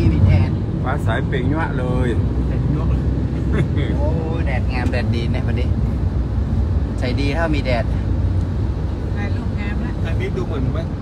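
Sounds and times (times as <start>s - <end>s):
vehicle rumble from inside cabin: 0.0s - 11.0s.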